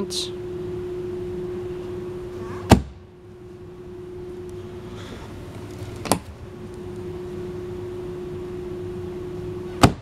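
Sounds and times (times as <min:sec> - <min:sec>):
steady low hum: 0:00.0 - 0:10.0
seat lid shutting with a thud: 0:02.6 - 0:03.0, 0:09.8 - 0:10.0.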